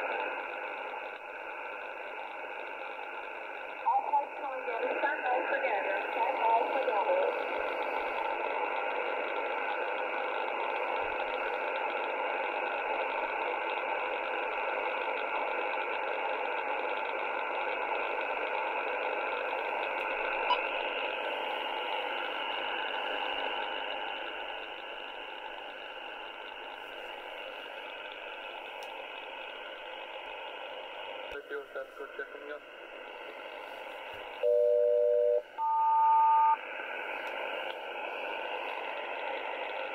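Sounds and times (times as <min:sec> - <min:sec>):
radio static hiss: 0:00.0 - 0:39.9.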